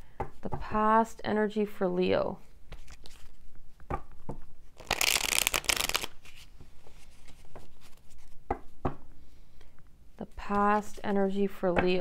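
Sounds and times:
cards shuffling: 2.7s - 3.4s, 4.8s - 8.4s
cards tapping and sliding: 3.9s - 6.4s.

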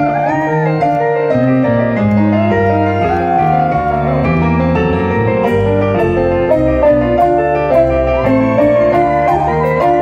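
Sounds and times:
bass guitar: 0.0s - 10.0s
drum kit: 2.2s - 10.0s.

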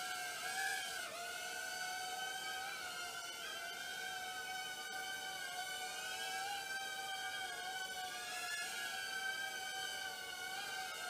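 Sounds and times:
quadcopter motors whining: 0.0s - 11.0s.

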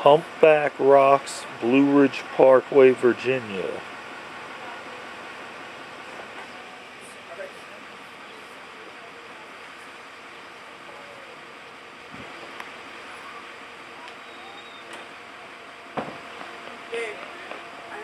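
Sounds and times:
faint distant voices: 0.0s - 18.0s
outdoor background noise: 0.0s - 18.0s.

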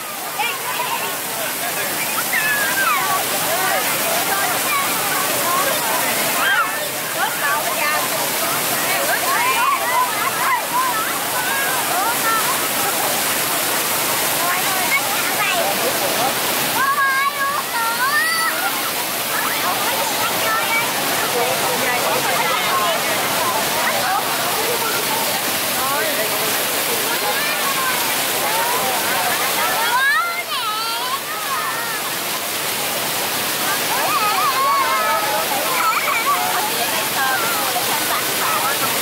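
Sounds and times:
children's voices: 0.0s - 39.0s
crowd chattering: 0.0s - 39.0s
fountain water spraying on pavement: 0.0s - 39.0s.

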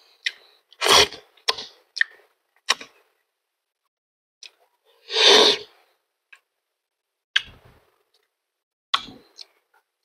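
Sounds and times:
lip smacks and clicks: 1.4s - 3.0s, 9.0s - 9.6s.

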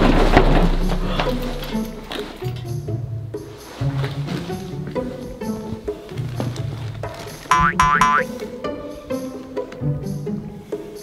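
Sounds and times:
background music: 0.0s - 11.0s
cartoon boing sound effects: 7.5s - 8.3s.

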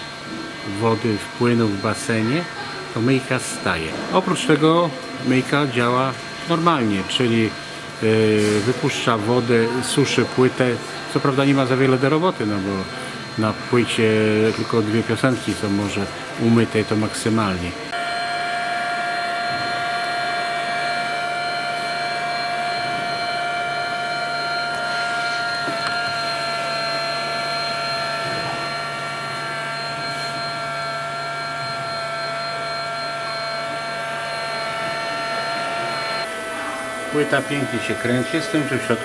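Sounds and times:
record cleaner motor whine: 0.0s - 39.0s.

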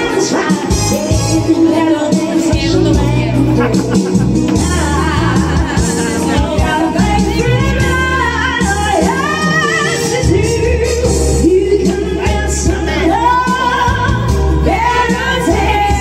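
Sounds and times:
backing music with bass line: 0.0s - 16.0s
woman singing karaoke: 0.0s - 16.0s.

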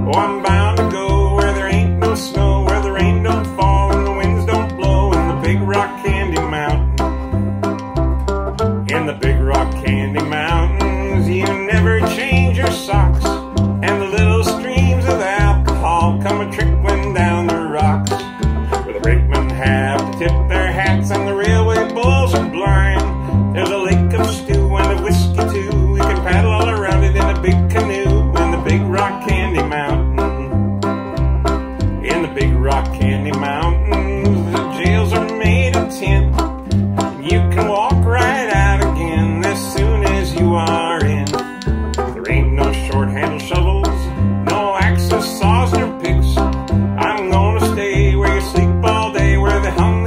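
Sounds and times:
picked banjo: 0.0s - 50.0s
string band playing: 0.0s - 50.0s
strummed acoustic guitar: 0.0s - 50.0s
upright bass thumping: 0.0s - 50.0s
musical spoons clicking: 31.6s - 50.0s.

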